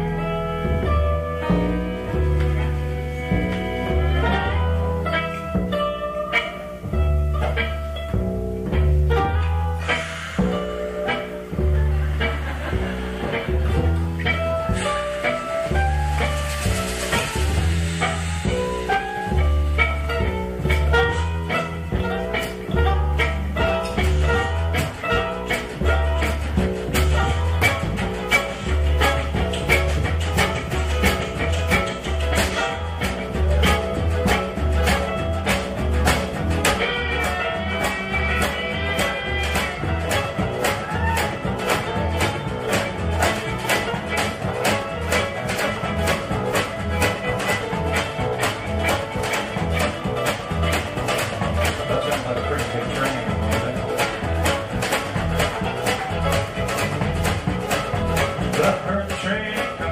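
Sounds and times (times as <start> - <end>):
acoustic guitar strumming: 0.0 - 59.9
plucked upright bass: 0.0 - 59.9
sharp percussion beats: 9.8 - 59.9.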